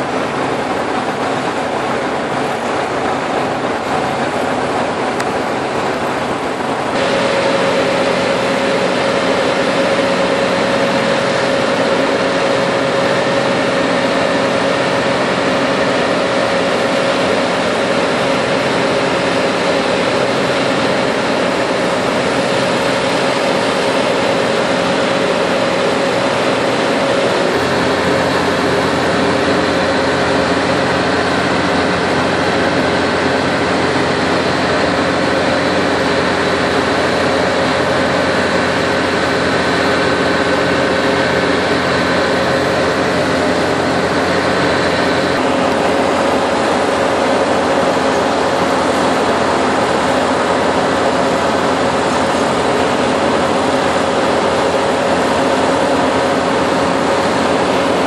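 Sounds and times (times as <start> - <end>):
diesel engines running: 0.0 - 58.0.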